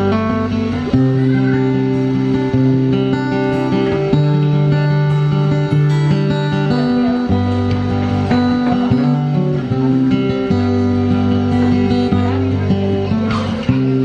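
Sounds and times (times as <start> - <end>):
acoustic guitar playing: 0.0 - 14.0.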